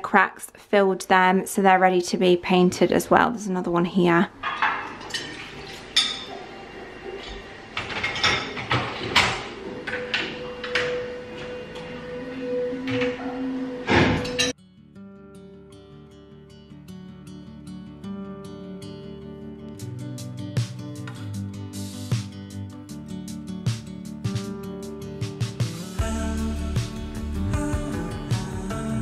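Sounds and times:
crockery clinking: 4.4 - 6.6, 7.2 - 11.6, 14.1 - 14.6
dishwasher racks rattling: 4.4 - 12.1, 12.7 - 14.5
acoustic guitar music: 4.4 - 29.0.

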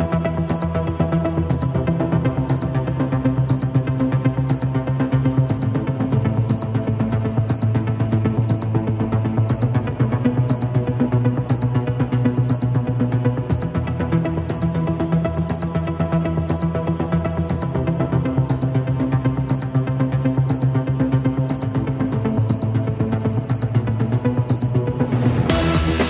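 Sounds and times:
electronic countdown music: 5.5 - 5.7, 13.5 - 13.7, 14.5 - 14.7, 17.5 - 17.7.

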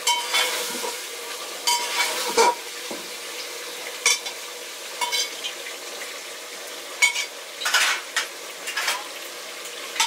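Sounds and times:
metal pot clank: 0.0 - 0.9, 1.6 - 3.0, 5.0 - 5.4, 7.0 - 9.1
sizzling hiss: 0.0 - 10.0
wooden spatula scraping pot: 1.8 - 2.6.

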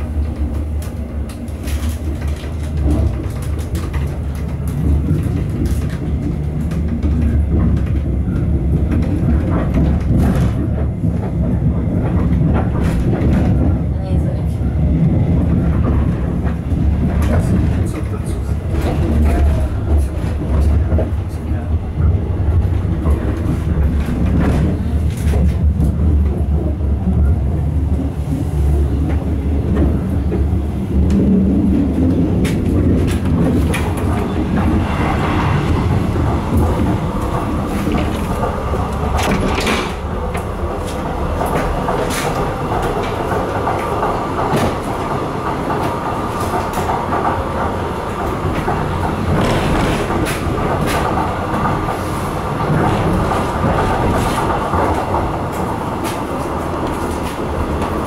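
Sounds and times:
diesel railcar running noise: 0.0 - 58.0.

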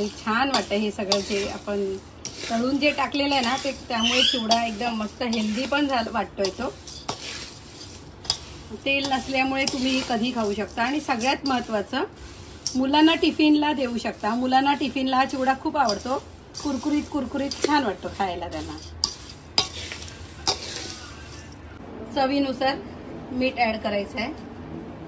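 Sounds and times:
spoon stirring dry snack in pan: 0.0 - 21.6.

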